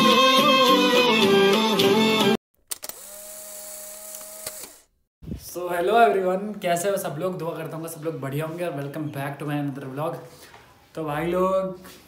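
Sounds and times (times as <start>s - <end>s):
music: 0.0s - 2.4s.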